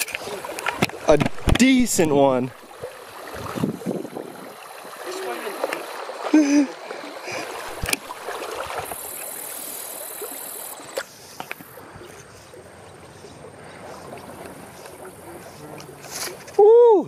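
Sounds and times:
creek water running over stones: 0.0 - 17.0.

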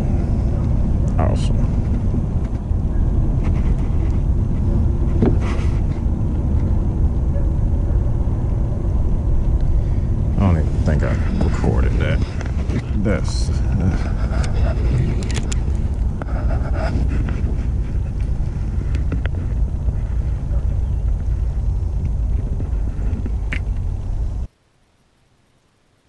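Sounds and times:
wind buffeting microphone: 0.0 - 24.5.

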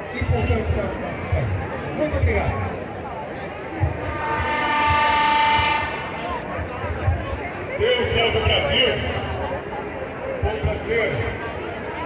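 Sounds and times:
crowd noise: 0.0 - 12.0
loud horn blast: 3.9 - 6.5.

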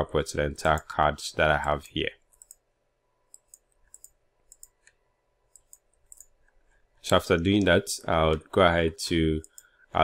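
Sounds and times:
computer mouse clicking: 2.3 - 2.6, 3.3 - 6.6, 9.4 - 9.7.

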